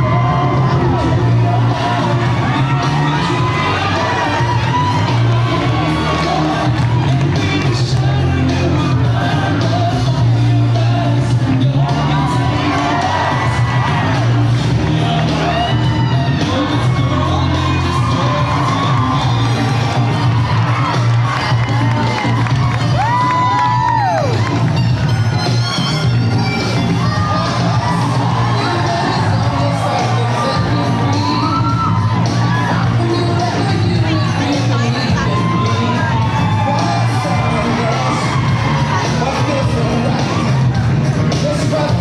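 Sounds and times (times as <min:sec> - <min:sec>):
audience cheering and whooping: 0:00.0 - 0:10.3, 0:11.2 - 0:42.0
loud music with bass line: 0:00.0 - 0:42.0.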